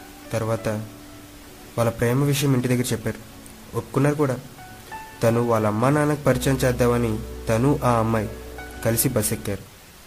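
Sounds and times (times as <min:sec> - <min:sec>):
man talking: 0:00.3 - 0:00.9, 0:01.8 - 0:04.5, 0:05.2 - 0:09.7.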